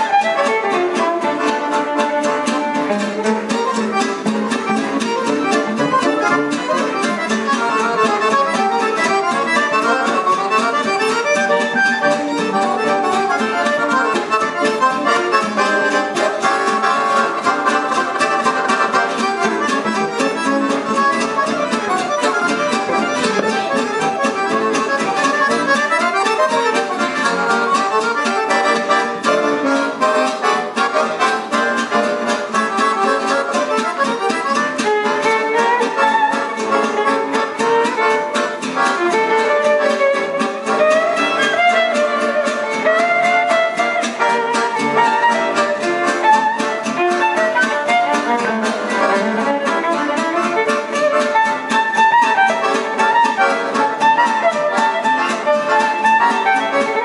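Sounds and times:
accordion: 0.0s - 57.0s
acoustic guitar: 0.0s - 57.0s
violin: 0.0s - 57.0s.

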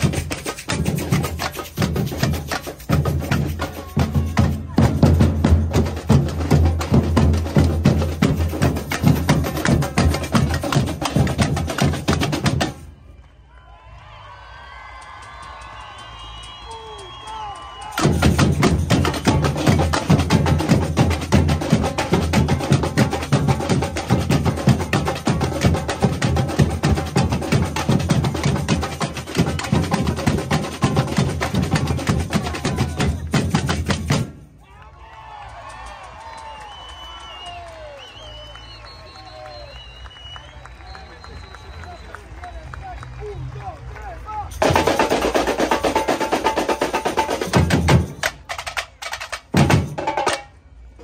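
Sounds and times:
samba drums playing: 0.0s - 12.8s, 17.8s - 34.5s, 44.6s - 51.0s
crowd voices and shouts: 3.5s - 5.4s, 12.7s - 20.0s, 31.6s - 33.6s.

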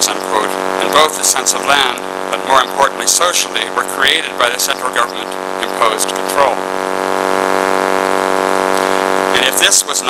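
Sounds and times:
loud steady hum: 0.0s - 10.0s.

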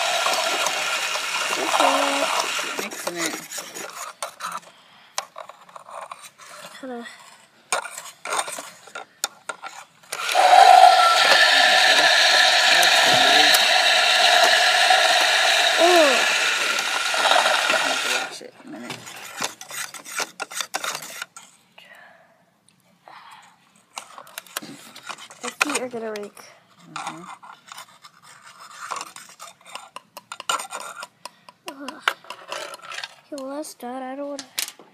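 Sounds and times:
toy toilet flushing: 0.0s - 3.9s, 10.1s - 18.5s.

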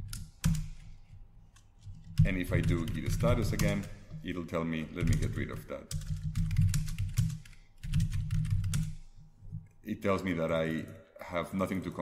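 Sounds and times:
computer keyboard typing: 0.0s - 0.8s, 2.0s - 3.9s, 5.0s - 9.0s.

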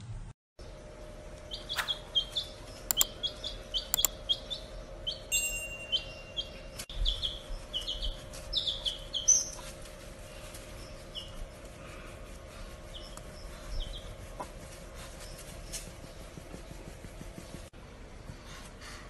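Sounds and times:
baby chick peeping: 1.4s - 9.8s, 10.6s - 11.7s, 12.9s - 15.8s
sharp clicks: 2.9s - 3.1s, 3.9s - 4.2s.

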